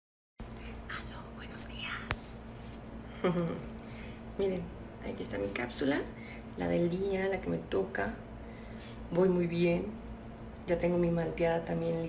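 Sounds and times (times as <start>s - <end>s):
faint low hum: 0.4s - 12.0s
woman whispering: 0.5s - 2.5s.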